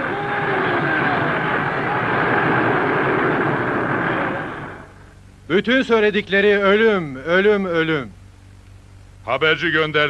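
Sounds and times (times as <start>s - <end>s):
crowd chanting and shouting: 0.0s - 5.0s.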